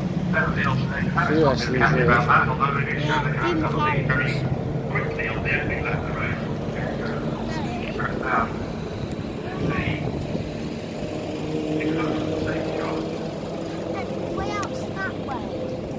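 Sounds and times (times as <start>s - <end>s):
vehicle engine humming: 0.0s - 15.9s
people talking: 0.4s - 8.6s, 9.4s - 10.1s, 13.8s - 15.6s.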